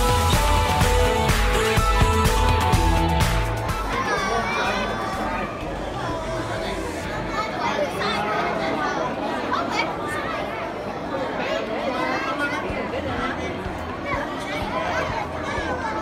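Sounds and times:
chatter of many people: 0.0 - 16.0.

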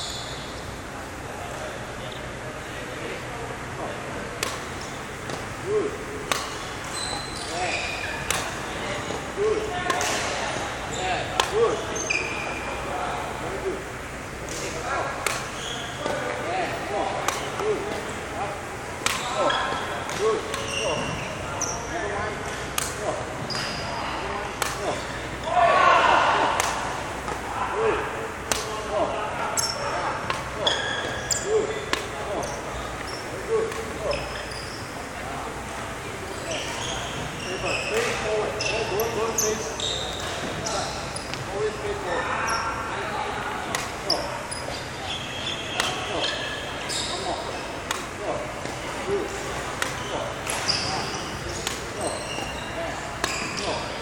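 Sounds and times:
shoe squeaks: 0.0 - 0.7, 6.4 - 9.2, 10.9 - 12.8, 15.4 - 16.3, 19.1 - 22.1, 23.4 - 24.2, 29.6 - 30.0, 30.6 - 33.4, 34.0 - 35.0, 36.3 - 41.4, 42.4 - 42.8, 44.0 - 47.8, 49.9 - 54.0
racket striking shuttlecock: 4.4 - 5.5, 6.2 - 6.8, 8.0 - 10.4, 11.3 - 11.8, 14.5 - 16.4, 17.2 - 18.1, 19.0 - 21.1, 22.5 - 23.0, 24.5 - 25.2, 26.5 - 27.5, 29.6 - 32.2, 33.0 - 34.0, 43.6 - 44.0, 45.7 - 46.2, 47.8 - 48.8, 49.7 - 53.7.

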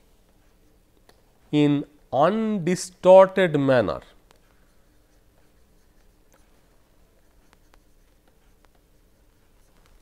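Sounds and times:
stylus writing on pen tablet: 0.2 - 1.4, 4.1 - 10.0.

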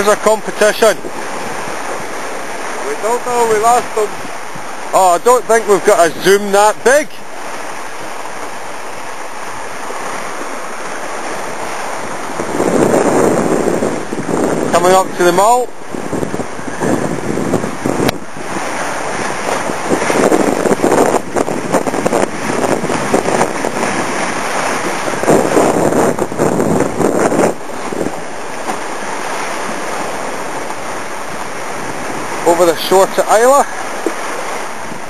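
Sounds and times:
water rushing past hull: 0.0 - 35.0
wind buffeting microphone: 0.0 - 35.0.

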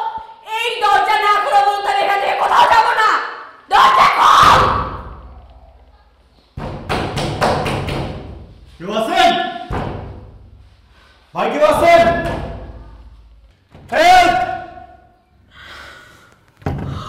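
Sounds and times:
heavy thuds: 9.7 - 11.2.

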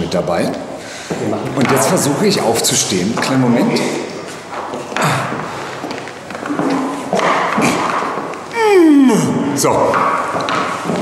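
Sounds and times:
person crying out with effort: 8.5 - 9.5.

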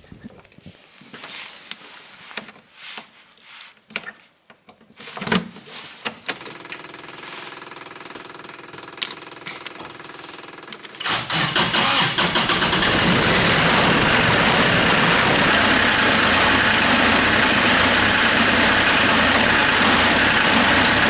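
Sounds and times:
diesel engine cranking and idling: 6.4 - 21.0.

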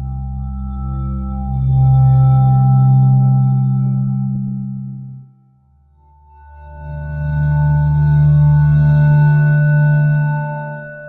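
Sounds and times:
low ringing drone music: 0.0 - 11.0.

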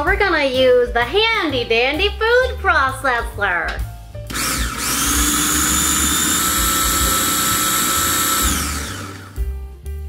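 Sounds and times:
food processor motor whirring: 4.3 - 9.5.

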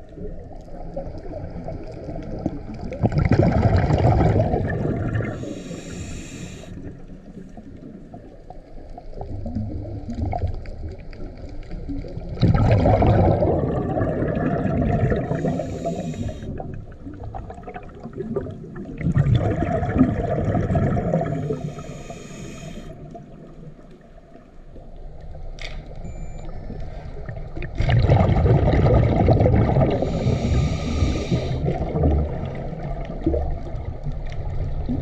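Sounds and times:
exhaled bubbles gushing underwater: 0.0 - 35.0
regulator inhale hiss: 5.2 - 7.0, 15.2 - 16.6, 21.3 - 23.2, 29.9 - 31.8.

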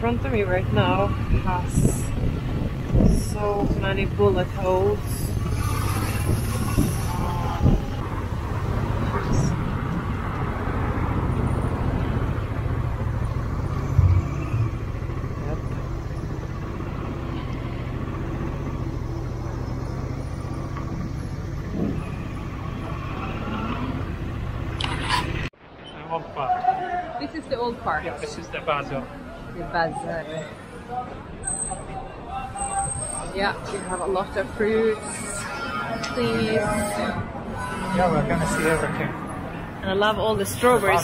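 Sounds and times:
motorcycle engine rumble: 0.0 - 25.5
street traffic: 0.0 - 41.0.

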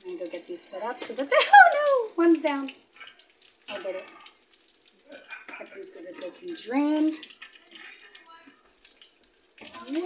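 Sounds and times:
oil sizzling in a frying pan: 0.0 - 10.0.

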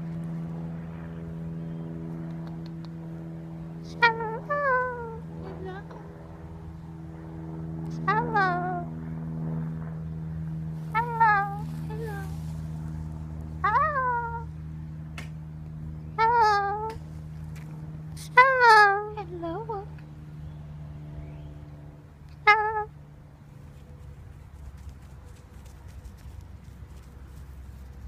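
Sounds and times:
steady low hum: 0.0 - 28.0
cockatoo calling: 10.8 - 12.4, 16.2 - 17.0, 18.2 - 19.8.

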